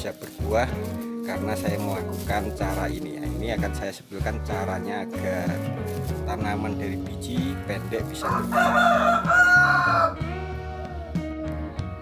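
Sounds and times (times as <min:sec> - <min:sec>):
background music: 0:00.0 - 0:12.0
rooster crowing: 0:08.2 - 0:11.1.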